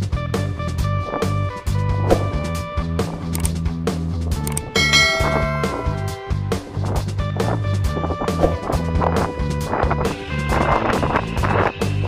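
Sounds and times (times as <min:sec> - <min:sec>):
background music with steady beat: 0:01.5 - 0:08.4
bright bell-like ding: 0:04.8 - 0:06.8.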